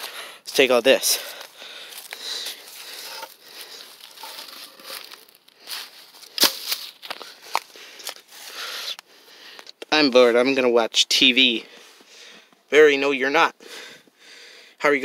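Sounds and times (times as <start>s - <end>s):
dry leaves and wood rustling: 0.0s - 8.9s.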